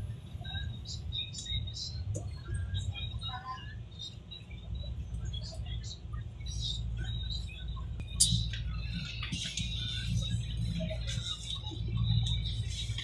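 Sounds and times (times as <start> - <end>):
train low rumble: 0.0 - 13.0.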